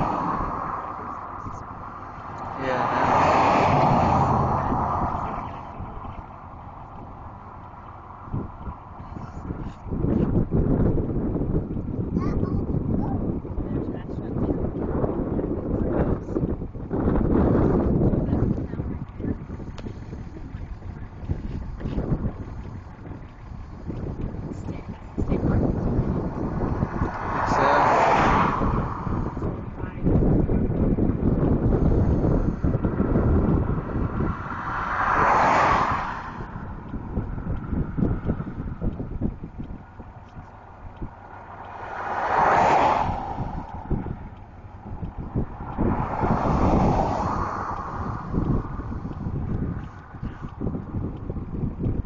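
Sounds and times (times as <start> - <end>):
vehicles passing on highway: 0.0 - 52.0
wind buffeting microphone: 0.0 - 52.0.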